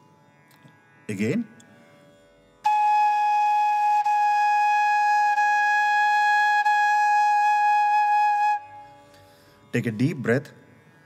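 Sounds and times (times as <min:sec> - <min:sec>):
bamboo flute long note: 0:02.6 - 0:09.0.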